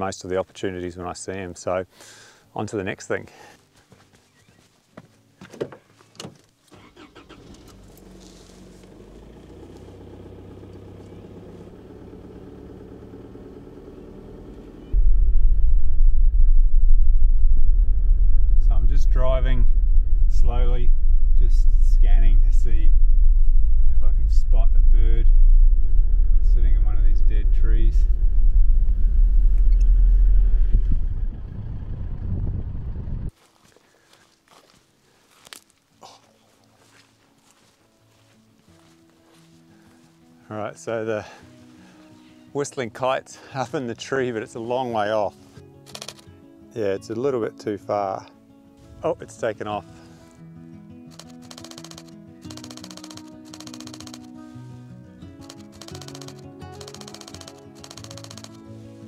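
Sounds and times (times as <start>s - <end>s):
tyres on gravel: 5.4s - 10.0s
car engine rumble: 6.8s - 33.3s.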